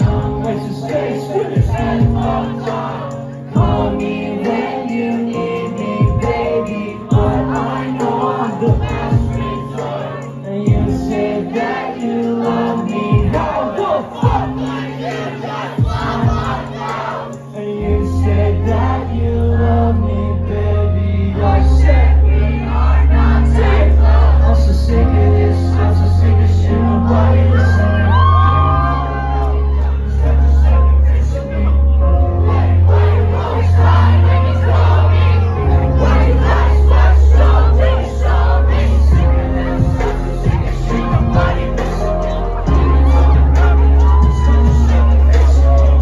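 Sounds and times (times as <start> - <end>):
heavy deep bass: 0.0 - 1.0, 1.6 - 2.7, 3.5 - 4.1, 6.0 - 7.9, 8.7 - 9.6, 10.5 - 11.4, 13.1 - 14.8, 17.8 - 46.0
loud live music: 0.0 - 19.8, 20.5 - 46.0
crowd voices: 0.0 - 46.0.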